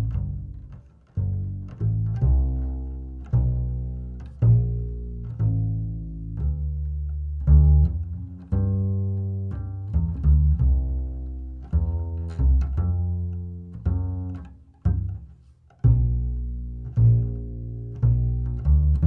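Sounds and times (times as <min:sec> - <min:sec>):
double bass plucked notes: 0:00.0 - 0:19.0.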